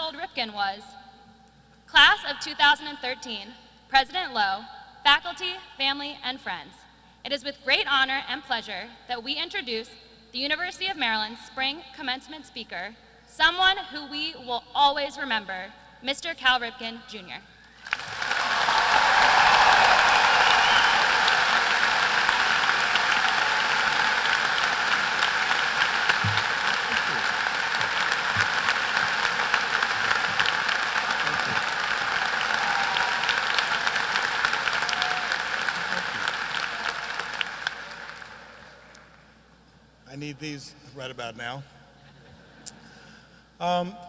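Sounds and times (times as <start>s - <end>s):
large audience applauding: 17.8s - 38.9s.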